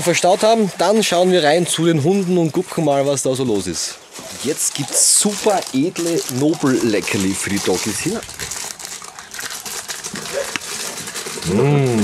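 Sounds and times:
packaging crinkling and rustling: 4.1 - 12.0.

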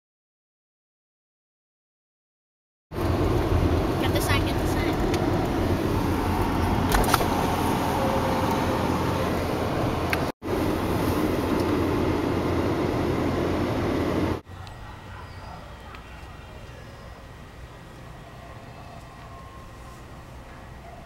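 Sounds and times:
car engine and tyres rumbling: 2.9 - 21.0.

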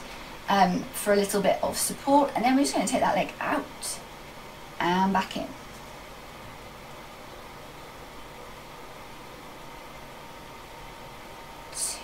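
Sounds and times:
steady recording hiss: 0.0 - 12.0.

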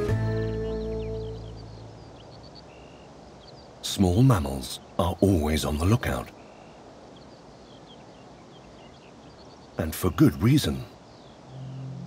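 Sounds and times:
background music held tones: 0.0 - 3.0, 9.8 - 12.0
faint high chirps: 0.0 - 12.0.

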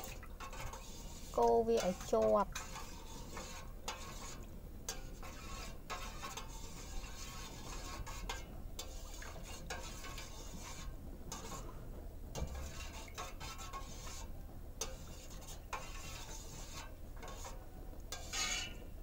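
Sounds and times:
metal spoon scraping saucepan: 0.4 - 11.7, 12.4 - 18.9.

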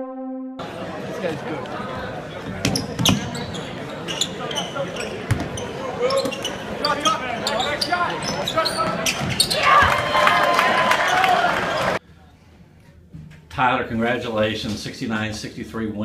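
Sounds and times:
shoe squeaks: 2.6 - 9.6
basketball bouncing on wooden court: 5.2 - 5.6
spectators shouting: 6.9 - 12.0.

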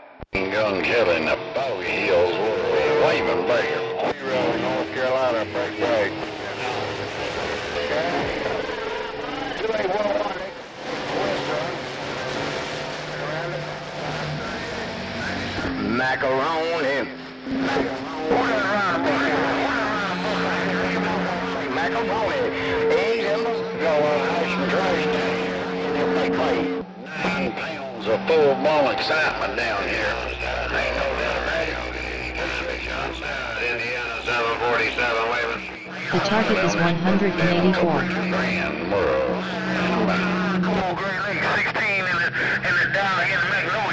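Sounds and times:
garbled radio voices: 36.1 - 38.4
radio static: 36.2 - 38.2.

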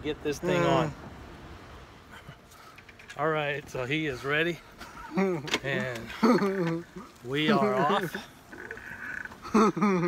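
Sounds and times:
faint outdoor background noise: 0.0 - 10.0.

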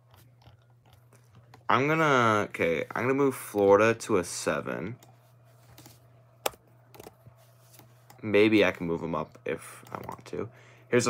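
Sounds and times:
steady low hum: 0.0 - 11.0
faint keyboard ticks: 9.3 - 10.3.

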